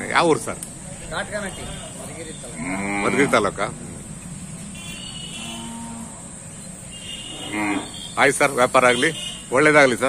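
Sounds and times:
cattle mooing: 2.5 - 3.5, 5.3 - 6.3, 7.3 - 8.0.

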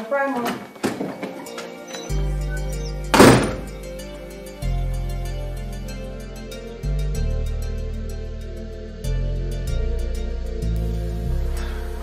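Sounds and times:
background music with deep bass: 0.7 - 12.0
door shutting with heavy thud: 3.1 - 3.7.

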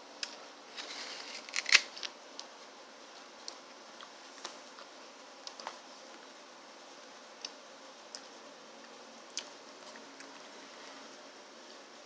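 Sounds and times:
apple crunching: 1.3 - 2.1.

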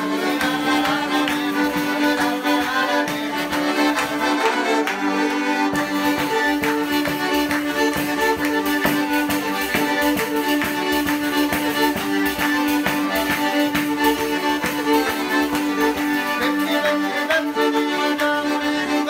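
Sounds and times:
bowed folk fiddle: 0.0 - 19.0
button accordion: 0.0 - 19.0.

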